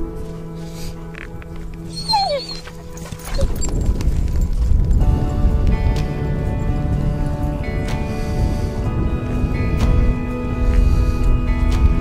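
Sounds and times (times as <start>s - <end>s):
background music with steady tones: 0.0s - 12.0s
dog whining: 1.8s - 3.8s.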